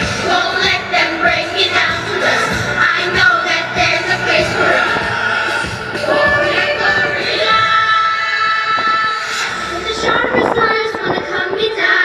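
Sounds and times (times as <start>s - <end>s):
backing music: 0.0s - 12.0s
young person singing: 6.0s - 12.0s.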